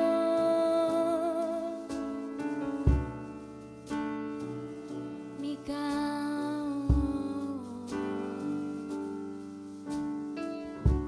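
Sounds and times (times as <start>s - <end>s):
woman singing worship song: 0.0s - 1.9s, 5.4s - 8.9s.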